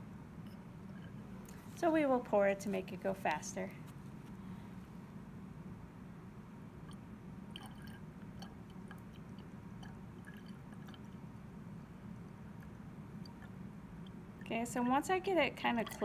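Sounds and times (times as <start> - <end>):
steady low hum: 0.0 - 16.0
water trickling into flask: 6.8 - 11.4, 12.0 - 14.8, 15.6 - 16.0
drips and ticks: 6.8 - 14.8, 15.6 - 16.0.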